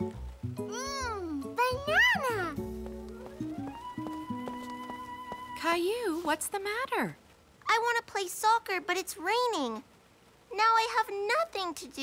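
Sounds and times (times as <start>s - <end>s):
cartoon background music: 0.0s - 5.6s.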